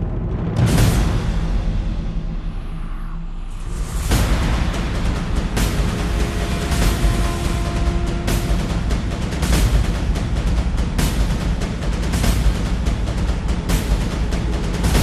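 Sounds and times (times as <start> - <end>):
loud music with heavy bass: 3.7 - 15.0.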